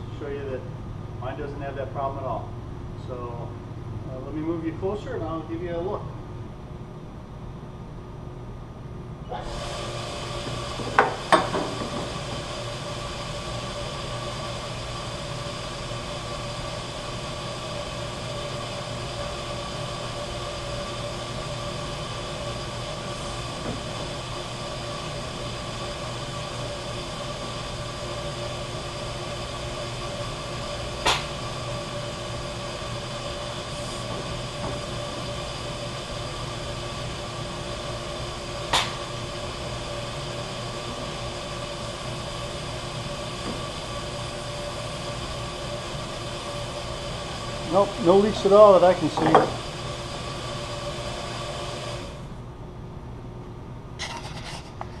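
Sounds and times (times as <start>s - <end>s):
pump hum: 9.1s - 52.9s
hiss: 9.4s - 27.5s.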